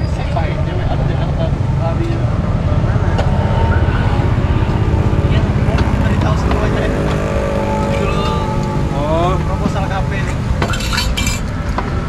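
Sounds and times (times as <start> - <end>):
road traffic engine rumble: 0.0 - 12.0
vehicle speeding up: 0.4 - 10.7.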